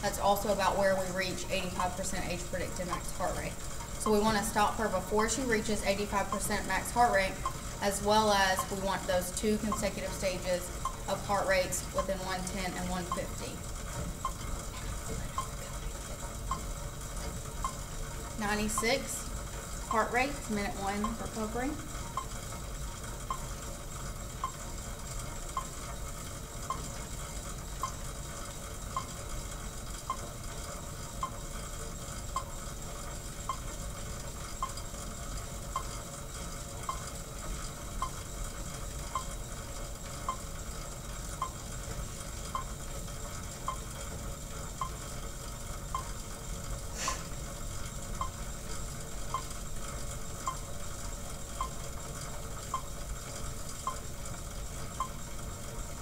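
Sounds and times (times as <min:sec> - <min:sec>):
exercise bike pedal squeak: 0:00.2 - 0:56.0.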